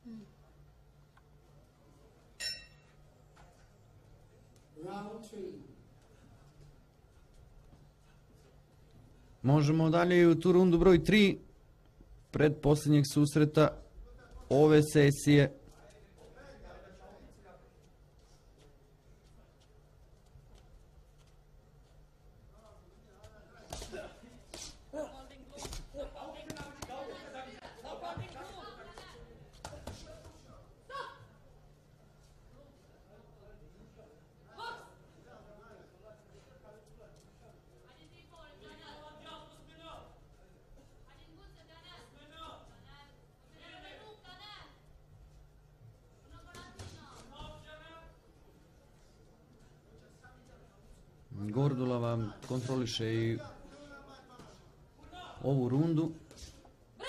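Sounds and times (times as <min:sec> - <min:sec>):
voices calling out in a hall: 0:00.0 - 0:57.0
boxing bell ding: 0:02.4 - 0:03.0.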